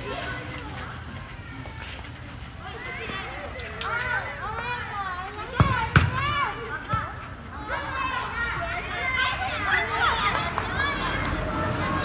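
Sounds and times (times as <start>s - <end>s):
young children calling and talking: 0.0s - 12.0s.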